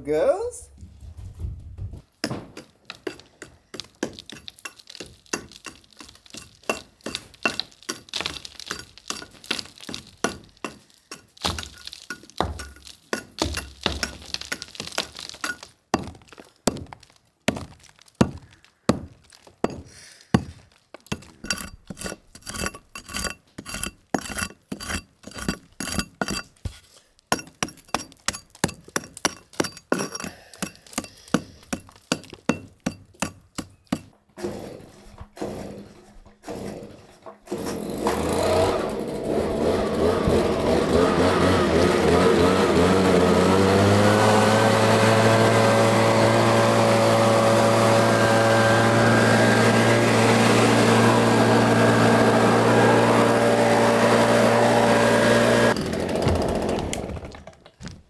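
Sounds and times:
hammer striking chisel: 0:02.2 - 0:14.7, 0:21.1 - 0:26.5, 0:27.3 - 0:34.8
leaf blower running: 0:38.0 - 0:57.6.

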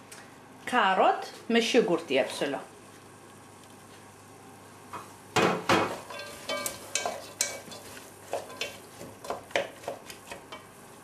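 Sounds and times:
vegetables sizzling in oil: 0:00.9 - 0:11.0
wooden spoon scraping a pot: 0:05.9 - 0:10.6.

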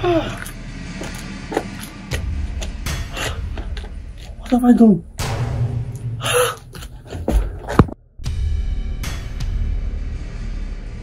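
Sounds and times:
man breathing heavily: 0:02.8 - 0:04.0, 0:06.1 - 0:07.8.

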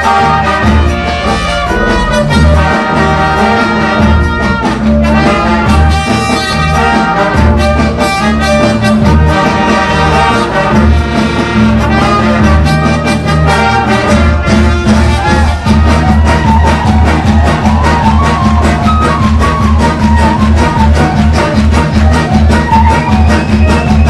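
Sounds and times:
bass and drums: 0:00.0 - 0:24.0
brass section playing: 0:00.0 - 0:24.0.

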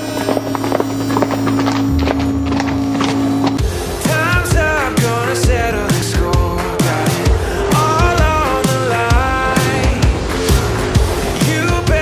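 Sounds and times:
horse hooves on gravel: 0:00.0 - 0:04.7
music holding low note: 0:00.7 - 0:04.1.

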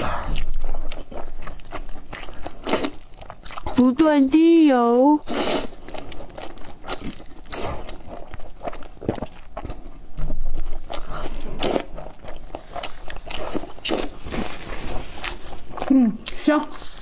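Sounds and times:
biting and chewing food: 0:00.0 - 0:04.2, 0:05.2 - 0:17.0.

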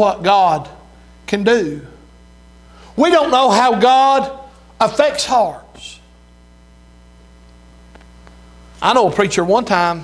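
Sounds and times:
man speaking: 0:00.0 - 0:02.1, 0:03.0 - 0:06.1, 0:08.8 - 0:10.0
low electrical hum: 0:00.0 - 0:10.0.

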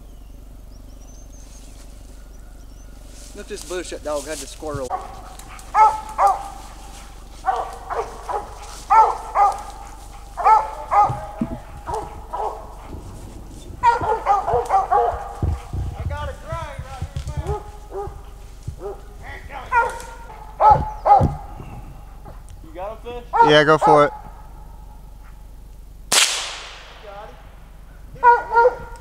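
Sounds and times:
dog barking: 0:04.8 - 0:22.5, 0:23.2 - 0:25.4, 0:28.0 - 0:29.0.

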